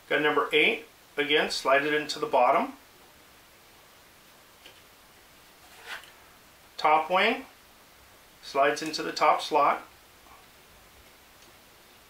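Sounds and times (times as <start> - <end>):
soft rustle: 4.6 - 6.4.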